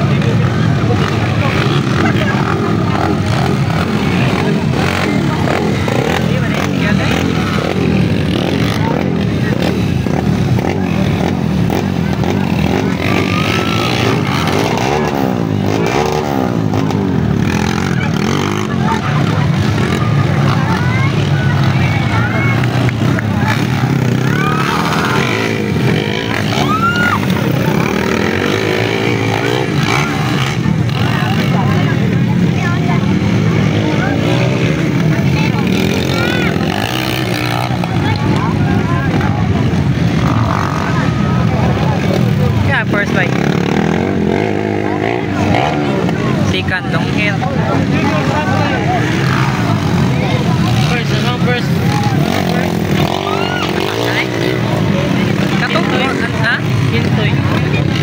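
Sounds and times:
motorcycle engines revving: 0:00.0 - 0:58.0.

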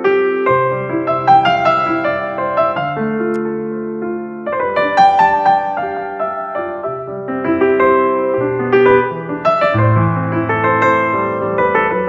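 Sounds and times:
soft piano chords: 0:00.0 - 0:12.0.

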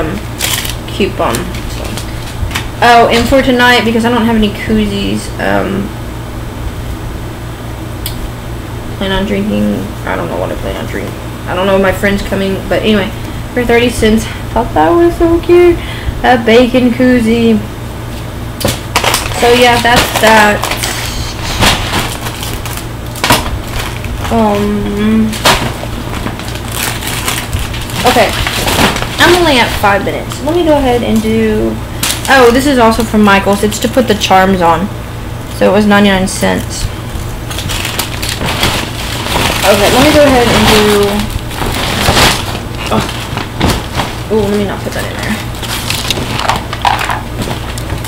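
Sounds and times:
low hum: 0:00.0 - 0:48.0
shopping bag rustling: 0:19.0 - 0:33.0, 0:37.2 - 0:48.0.

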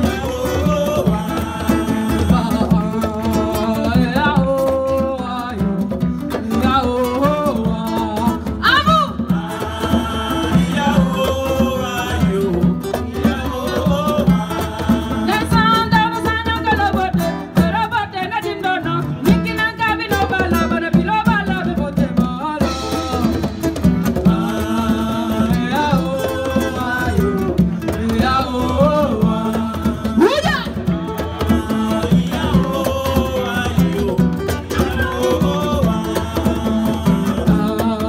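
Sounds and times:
live band with vocals: 0:00.0 - 0:38.0.

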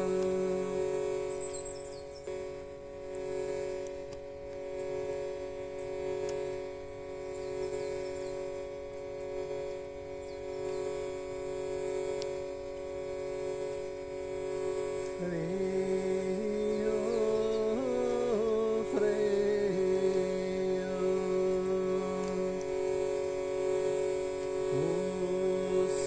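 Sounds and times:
faint bird chirps: 0:00.0 - 0:02.6, 0:07.1 - 0:11.4, 0:15.0 - 0:22.4, 0:23.0 - 0:25.2
musical drone of held tones: 0:00.0 - 0:26.0
sung note: 0:00.0 - 0:26.0.

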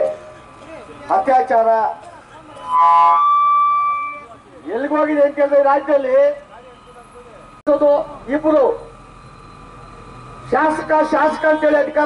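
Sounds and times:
microphone feedback tone: 0:02.6 - 0:04.3
man shouting through loudspeaker: 0:10.6 - 0:12.0.

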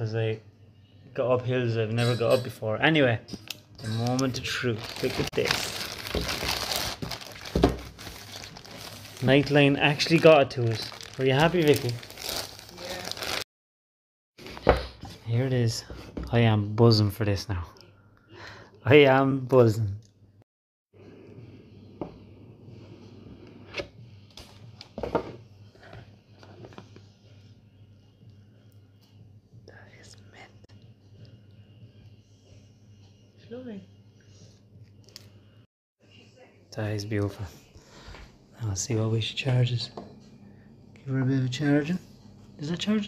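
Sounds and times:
plastic mailer bag crinkling: 0:04.0 - 0:13.4.

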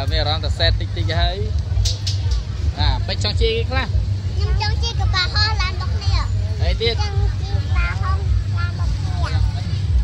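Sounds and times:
faint people's voices: 0:00.0 - 0:10.0
low rumble of street sound: 0:00.0 - 0:10.0.

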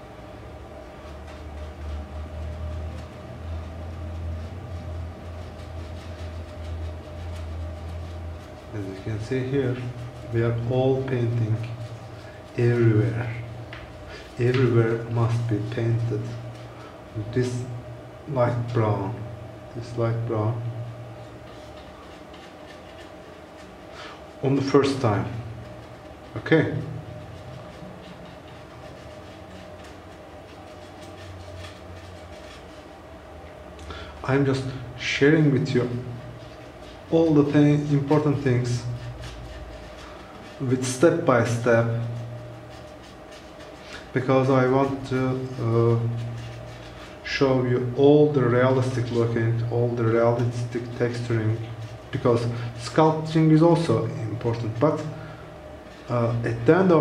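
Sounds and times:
low hum: 0:00.0 - 0:57.0
paintbrush scratching: 0:00.0 - 0:57.0.

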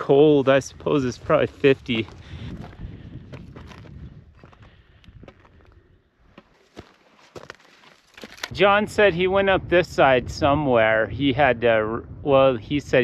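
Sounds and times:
boots crunching on loose stones: 0:00.4 - 0:08.5.

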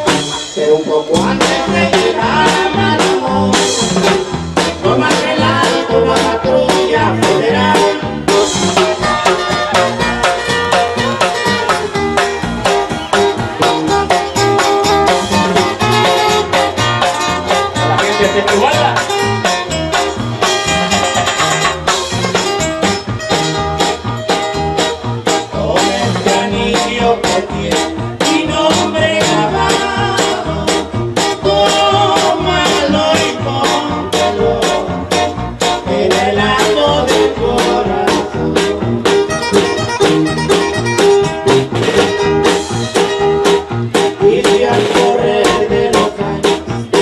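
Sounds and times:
live band playing: 0:00.0 - 0:47.0
strummed guitars: 0:00.0 - 0:47.0
walking bass line: 0:00.0 - 0:47.0.

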